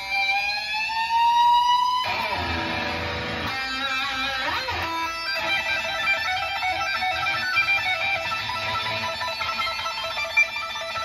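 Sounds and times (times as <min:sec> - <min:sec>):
electric guitar sustained note: 0:00.0 - 0:11.0.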